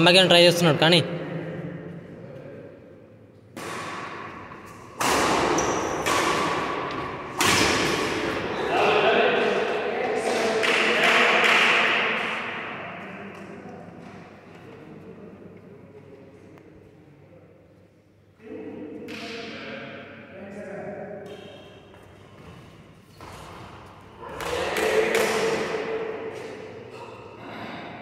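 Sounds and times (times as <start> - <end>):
voices in a hall: 0.0 - 28.0
racquet hitting shuttlecock: 3.5 - 8.5, 23.2 - 26.7.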